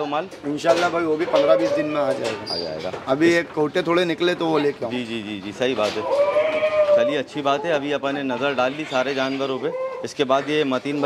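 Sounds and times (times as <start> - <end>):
goat bleating: 6.0 - 7.3, 8.3 - 10.1.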